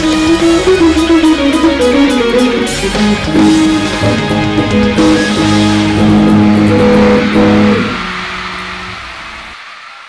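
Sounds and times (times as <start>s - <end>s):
electric guitar chords: 0.0s - 9.6s.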